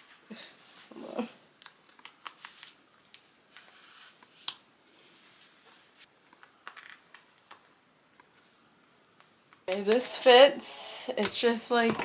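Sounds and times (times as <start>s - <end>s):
fabric rustling: 3.5s - 6.1s.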